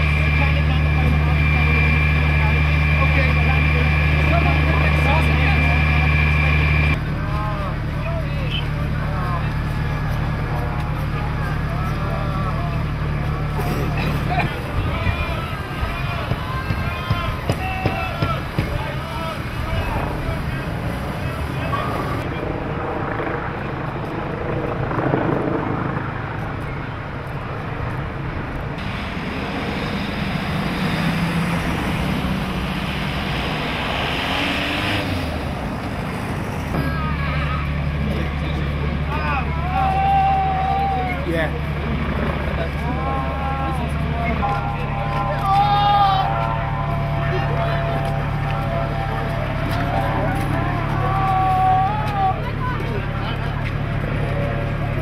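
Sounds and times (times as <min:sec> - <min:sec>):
engines running: 0:00.0 - 0:55.0
low engine drone: 0:00.0 - 0:55.0.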